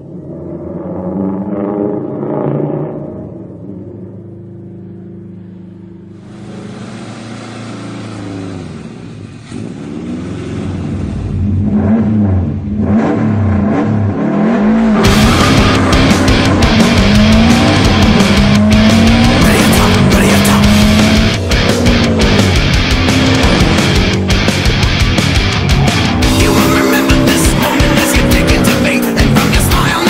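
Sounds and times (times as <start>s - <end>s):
rally car engine revving: 0.0s - 30.0s
hiss: 6.2s - 9.5s.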